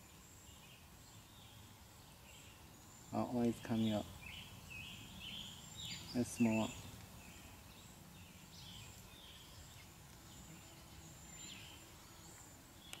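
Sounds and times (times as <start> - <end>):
distant birds chirping: 0.0 - 13.0
thin steady high hiss: 0.0 - 13.0.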